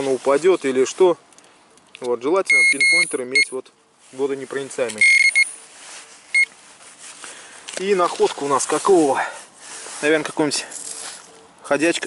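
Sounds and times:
pinpointer beeping: 2.5s - 3.5s, 5.0s - 5.5s.

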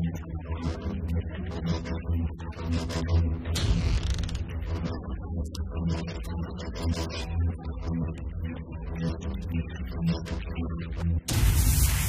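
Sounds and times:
background music bass: 0.0s - 12.0s.

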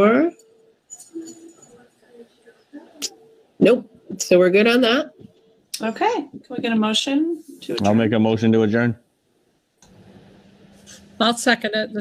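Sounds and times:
faint steady hiss: 0.0s - 12.0s
low microphone hum: 0.9s - 9.0s, 9.8s - 12.0s.

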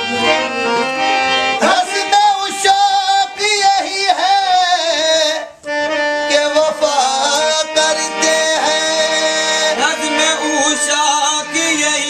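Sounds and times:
harmonium reed chords: 0.0s - 12.0s
man singing ornamented melody: 1.6s - 12.0s.

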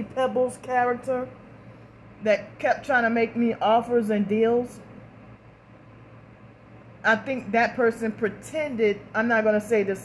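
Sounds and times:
low even hum: 0.0s - 10.0s.

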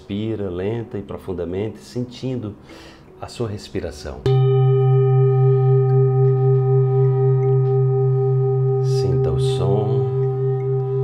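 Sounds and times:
metal singing bowl ringing: 4.2s - 11.0s.

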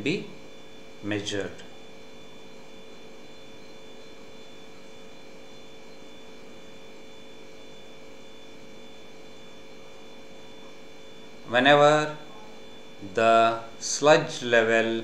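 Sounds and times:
constant high tones: 0.0s - 15.0s
electrical hum with hiss: 0.0s - 15.0s.

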